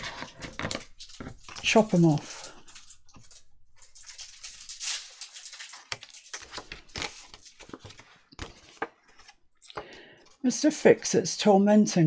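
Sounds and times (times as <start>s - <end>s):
paper rustling: 0.0s - 10.5s.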